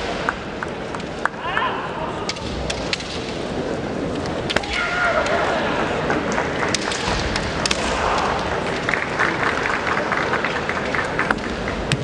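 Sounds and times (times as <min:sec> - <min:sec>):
people shouting: 0:04.6 - 0:05.8, 0:07.7 - 0:08.6.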